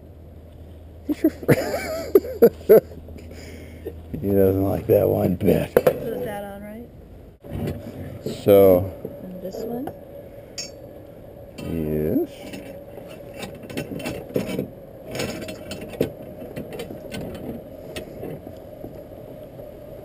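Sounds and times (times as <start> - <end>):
faint steady hum: 0.0 - 20.0
metal rod clinking and scraping: 10.6 - 10.8.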